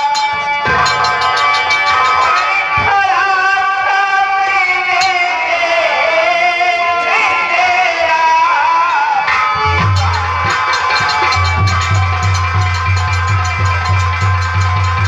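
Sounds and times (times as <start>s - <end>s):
folk singing over a pa: 0.7s - 12.7s.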